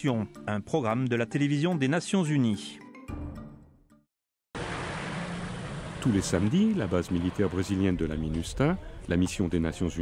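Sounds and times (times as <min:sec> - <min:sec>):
car driving past: 0:04.6 - 0:08.1.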